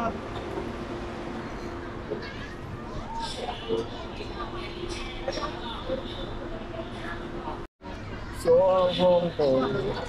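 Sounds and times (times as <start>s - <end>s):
subway train running noise: 0.0s - 10.0s
quiet passenger chatter: 1.4s - 10.0s.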